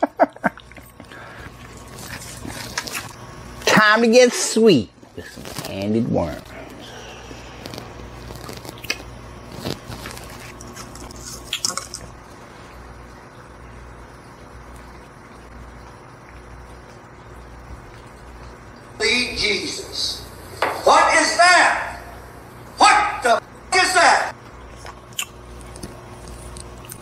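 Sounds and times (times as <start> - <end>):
candy packaging crinkling: 7.5 - 12.1
loud voice: 20.8 - 22.1, 22.8 - 24.3.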